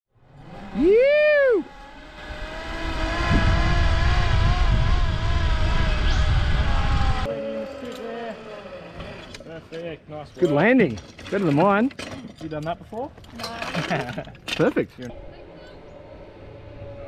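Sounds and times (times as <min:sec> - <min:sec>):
zipline pulley whine: 0:00.2 - 0:09.5, 0:15.0 - 0:17.0
wind rumble on microphone: 0:02.2 - 0:07.3.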